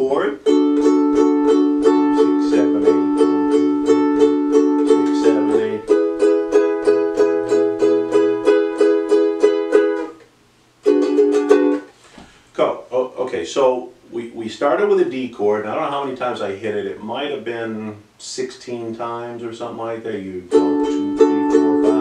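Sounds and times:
ukulele strumming: 0:00.0 - 0:11.9, 0:20.2 - 0:22.0.

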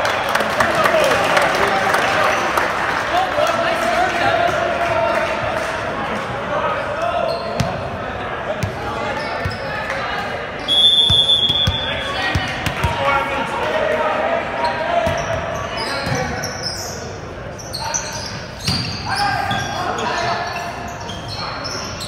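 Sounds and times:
sneakers squeaking on floor: 0:07.2 - 0:07.9, 0:08.6 - 0:09.8, 0:10.6 - 0:12.5, 0:14.6 - 0:22.0.

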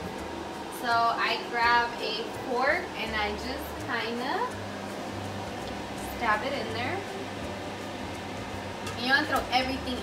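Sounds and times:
low hum and hiss of room noise: 0:00.0 - 0:10.0.

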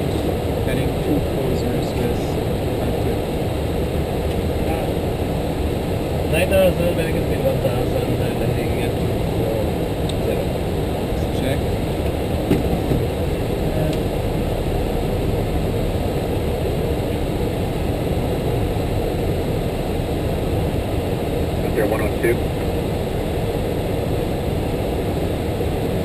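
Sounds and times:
aircraft cabin rush and hum: 0:00.0 - 0:26.0.

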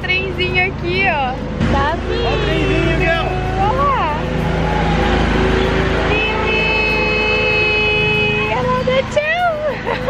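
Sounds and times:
small train engine rumble: 0:00.0 - 0:10.0
street traffic: 0:00.0 - 0:10.0.

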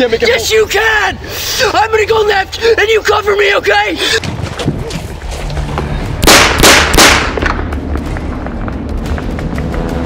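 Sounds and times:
gunshots with echo: 0:06.2 - 0:07.7.

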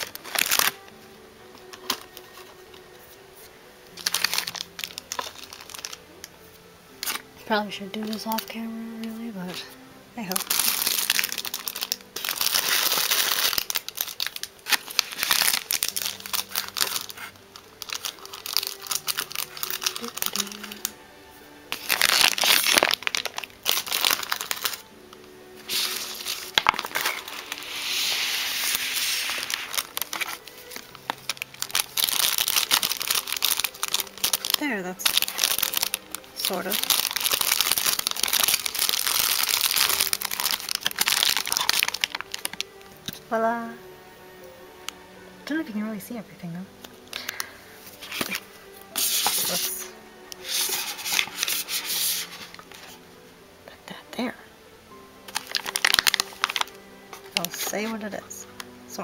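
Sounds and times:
plastic bags crinkling: 0:00.0 - 0:01.0, 0:01.6 - 0:02.8, 0:03.9 - 0:06.1, 0:07.9 - 0:21.0, 0:21.7 - 0:24.9, 0:25.6 - 0:43.2, 0:47.1 - 0:53.0, 0:55.3 - 0:58.6
person humming: 0:18.6 - 0:21.2.

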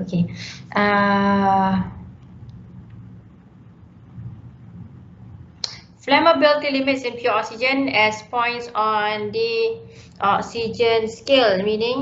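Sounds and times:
faint rumble: 0:00.0 - 0:12.0.

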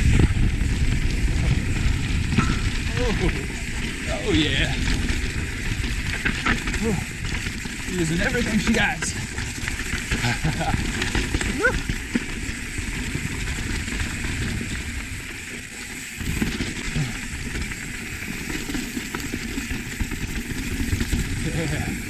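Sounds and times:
wind on camera microphone: 0:00.0 - 0:08.0
bike tyres rolling over dirt: 0:00.0 - 0:22.0.

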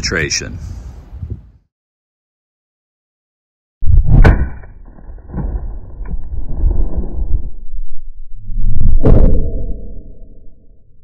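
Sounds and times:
wind buffeting microphone: 0:00.0 - 0:01.6.

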